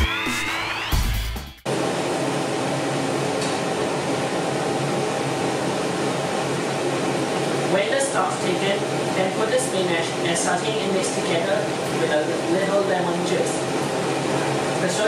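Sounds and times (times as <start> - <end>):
electronic background music: 0.0 - 1.6
extractor fan whirring: 1.6 - 15.0.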